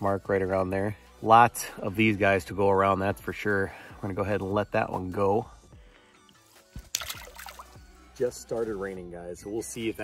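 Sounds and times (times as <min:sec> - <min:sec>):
faint background music: 0:00.0 - 0:10.0
fish splashing into water: 0:06.8 - 0:07.8.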